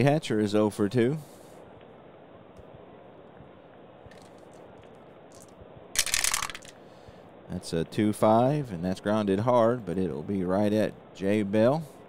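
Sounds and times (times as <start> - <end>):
dice clattering in tray: 6.0 - 6.7
dice clicking in hand: 6.0 - 6.7.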